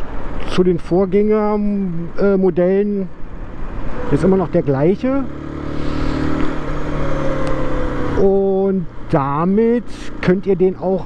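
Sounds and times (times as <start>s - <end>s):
wind and road noise: 0.0s - 11.0s
motorcycle engine cruising: 3.5s - 11.0s.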